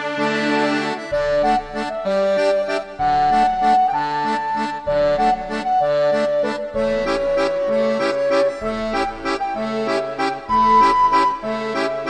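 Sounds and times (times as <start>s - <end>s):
accordion playing folk tune: 0.0s - 12.0s.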